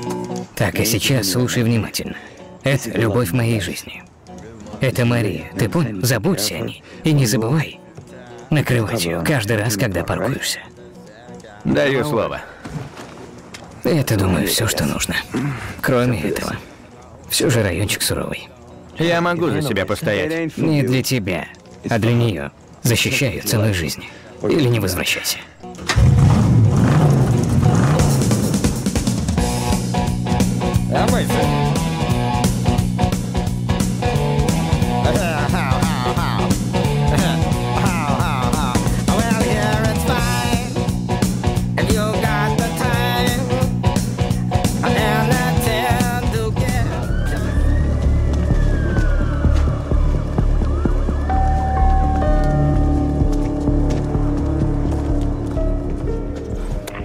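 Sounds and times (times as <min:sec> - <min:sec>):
music: 0:00.0 - 0:57.0
car engine revving: 0:25.9 - 0:29.9
siren wailing: 0:46.4 - 0:53.2.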